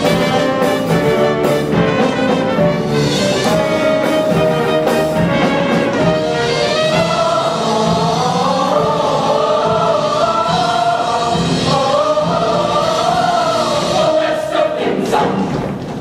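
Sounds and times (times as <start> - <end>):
choir singing in harmony: 0.0 - 16.0.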